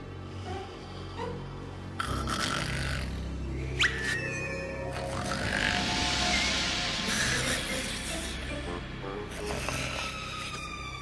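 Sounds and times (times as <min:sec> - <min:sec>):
cartoon snoring: 0:02.0 - 0:03.3, 0:04.9 - 0:06.1.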